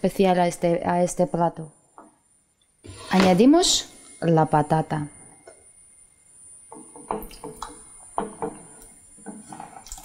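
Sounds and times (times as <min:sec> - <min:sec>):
spatula scraping cutting board: 0:02.9 - 0:03.4.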